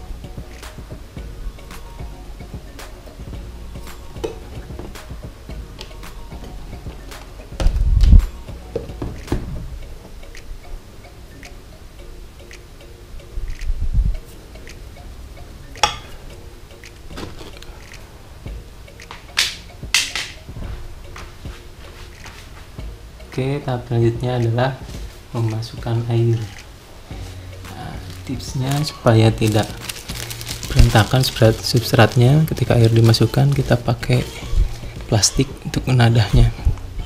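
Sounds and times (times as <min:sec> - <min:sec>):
soft background music: 0:00.0 - 0:37.0
low thumps: 0:06.4 - 0:10.1.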